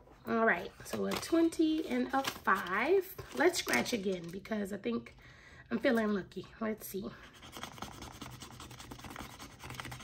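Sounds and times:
pen scratching scratch-off card: 0:07.3 - 0:10.0.

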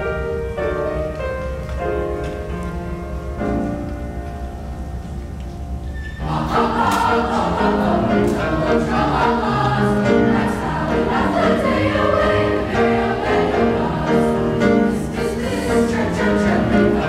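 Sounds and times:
choir singing: 0:06.2 - 0:17.0.

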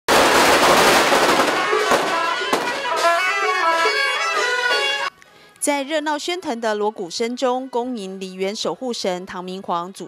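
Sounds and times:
firecrackers crackling: 0:00.1 - 0:04.2
wind instruments holding notes: 0:00.9 - 0:06.1.

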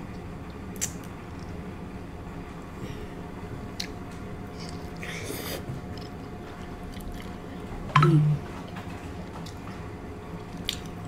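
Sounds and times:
chewing with mouth closed: 0:03.7 - 0:07.4, 0:10.5 - 0:11.0.

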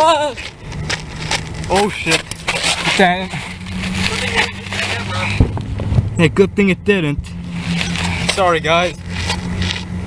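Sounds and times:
low mechanical hum: 0:00.0 - 0:10.0
dull thump: 0:05.4 - 0:06.2.

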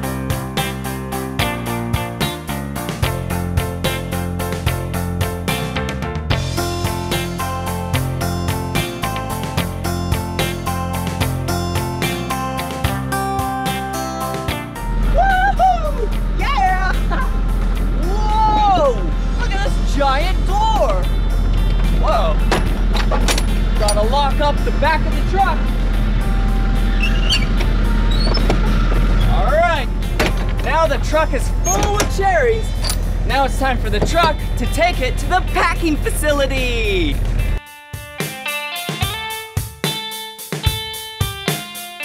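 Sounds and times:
acoustic guitar music: 0:06.6 - 0:42.0
low rumble: 0:14.8 - 0:37.6.

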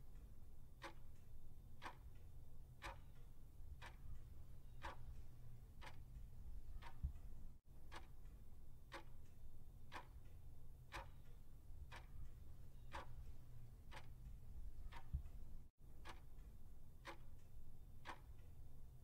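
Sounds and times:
faint clock ticking: 0:00.0 - 0:19.0
low steady hum: 0:00.0 - 0:19.0.

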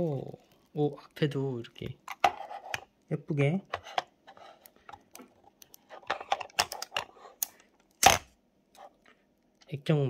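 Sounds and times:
picking at protective film: 0:00.0 - 0:09.7
sharp plastic snap: 0:07.4 - 0:08.3.

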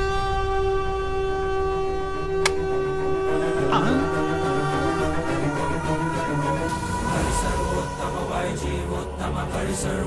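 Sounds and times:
long held synthesized note: 0:00.0 - 0:07.3
low drone: 0:00.0 - 0:10.0.

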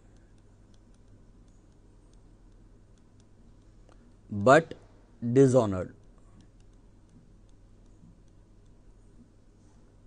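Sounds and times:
stylus tapping on tablet screen: 0:00.0 - 0:04.1, 0:06.0 - 0:09.4
low steady hum: 0:00.0 - 0:10.0.

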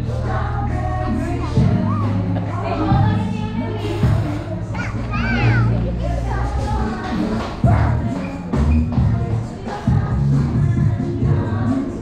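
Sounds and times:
background music: 0:00.0 - 0:12.0
young child's voice: 0:04.7 - 0:05.8.

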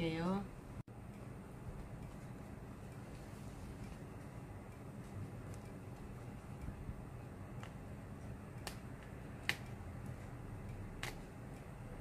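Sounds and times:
low steady hum: 0:00.0 - 0:12.0
thread snapping clicks: 0:08.6 - 0:09.8.

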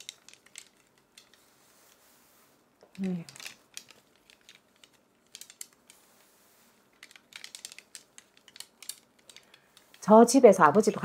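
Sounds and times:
cloth flags rustling: 0:00.0 - 0:11.0.

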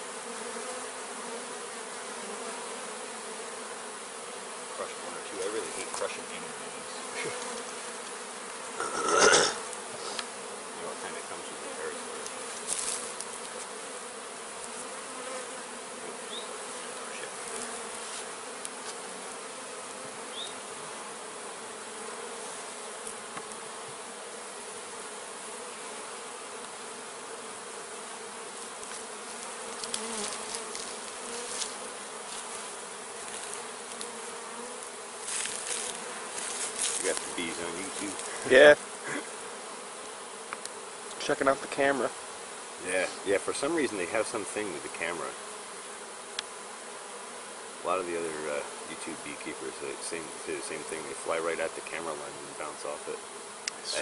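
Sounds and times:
bees buzzing: 0:00.0 - 0:54.0.

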